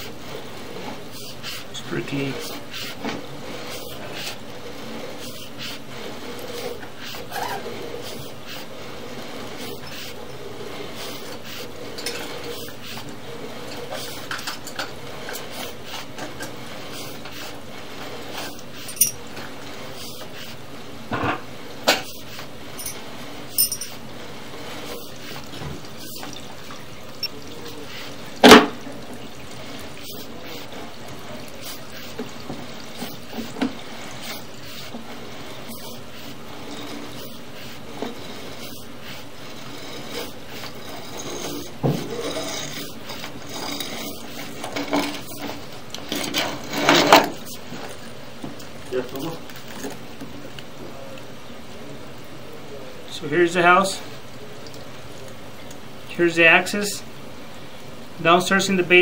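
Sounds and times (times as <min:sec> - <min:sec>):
camera cable rushing through pipe: 0:00.0 - 0:20.8, 0:24.2 - 0:48.0.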